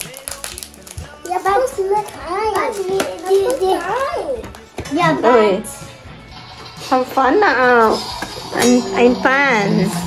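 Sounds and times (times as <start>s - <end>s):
soft music with stepping tones: 0.0s - 10.0s
child speaking: 1.3s - 4.4s.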